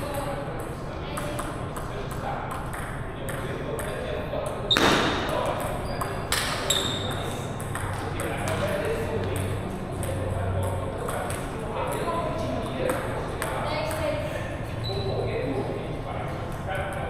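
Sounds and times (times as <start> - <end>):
voices chattering: 0.0 - 17.0
table tennis balls clicking: 5.4 - 14.0.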